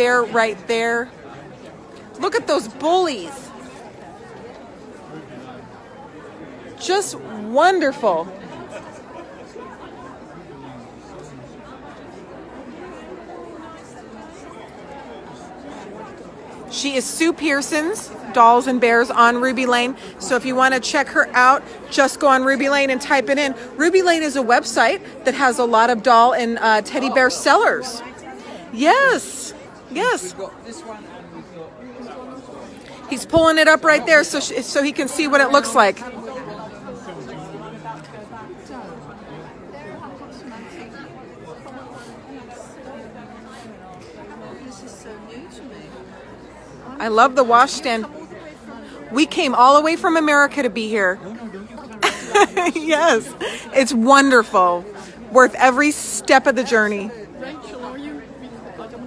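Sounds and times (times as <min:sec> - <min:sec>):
crowd chatter indoors: 0:00.0 - 0:59.0.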